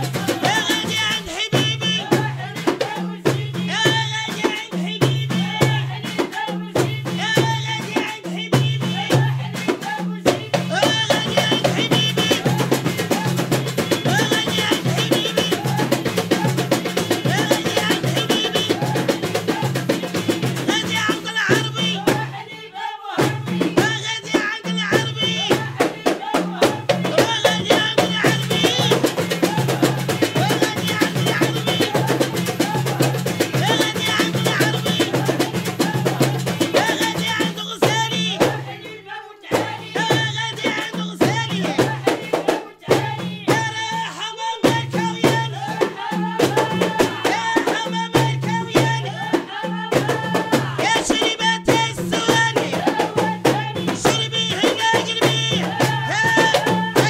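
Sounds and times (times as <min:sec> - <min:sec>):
frame drums in quick rhythm: 0:00.0 - 0:57.0
women singing: 0:00.0 - 0:57.0.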